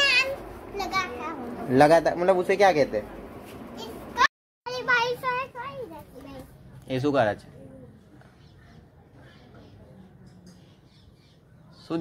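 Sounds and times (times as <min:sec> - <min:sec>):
child's high-pitched voice: 0:00.0 - 0:01.6, 0:03.8 - 0:06.6.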